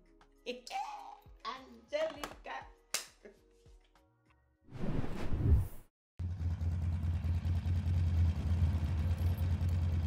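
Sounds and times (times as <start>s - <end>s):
vehicle engine idling: 6.2s - 10.0s.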